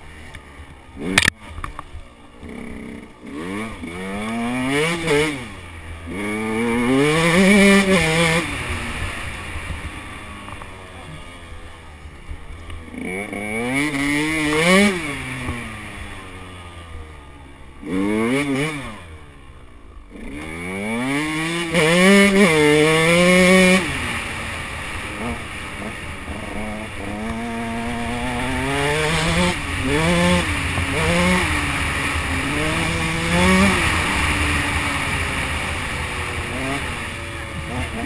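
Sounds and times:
motorcycle engine revving: 0:00.0 - 0:38.0.

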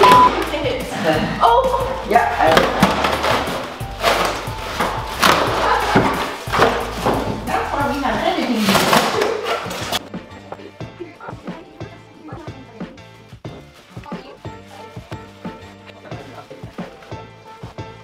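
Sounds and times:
background music with singing: 0:00.0 - 0:18.0
styrofoam and plastic wrap rustling: 0:01.8 - 0:10.0, 0:12.6 - 0:18.0.

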